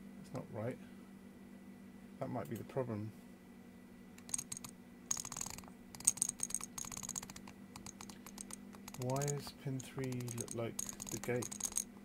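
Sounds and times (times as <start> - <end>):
handwheel encoder clicking: 4.2 - 9.4, 10.0 - 11.9.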